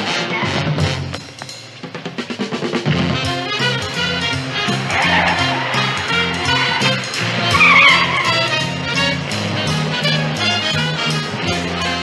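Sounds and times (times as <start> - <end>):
television score with bass line: 0.0 - 10.4
car tyres squealing: 3.6 - 10.3.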